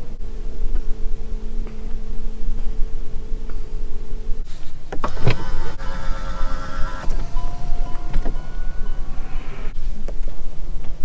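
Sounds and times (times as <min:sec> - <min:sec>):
steady low hum: 0:00.0 - 0:11.0
electric seat motor whining: 0:05.0 - 0:09.8.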